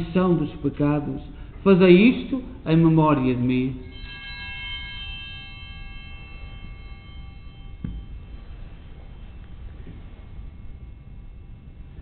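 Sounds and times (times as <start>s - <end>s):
altar bell ringing: 2.0s - 12.0s.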